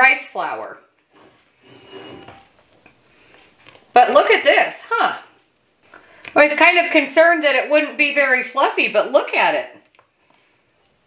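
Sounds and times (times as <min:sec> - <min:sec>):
spatula scraping a metal bowl: 0:01.1 - 0:02.5.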